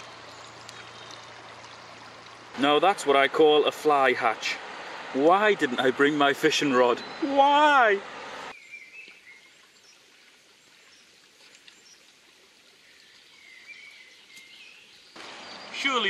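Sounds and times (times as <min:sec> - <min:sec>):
faint stream flowing: 0:00.0 - 0:16.0
soft bird chirps: 0:06.9 - 0:07.3, 0:12.8 - 0:16.0.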